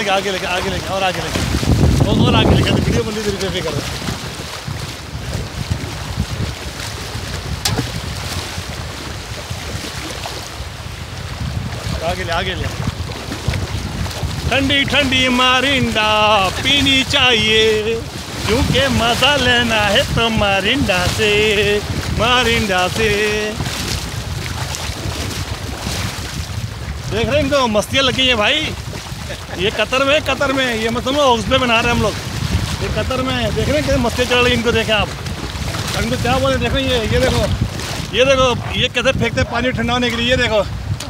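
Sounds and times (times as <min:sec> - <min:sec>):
sea water lapping: 0:00.0 - 0:41.0
wind buffeting microphone: 0:00.0 - 0:41.0.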